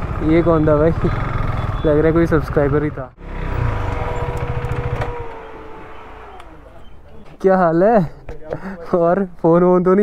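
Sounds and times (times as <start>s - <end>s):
motorcycle engine whine: 0.0s - 7.4s.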